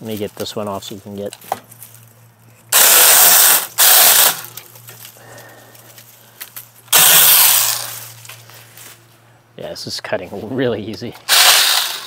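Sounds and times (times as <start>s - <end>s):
mini chainsaw cutting limbs: 2.7s - 4.8s, 6.9s - 8.4s, 11.2s - 12.0s.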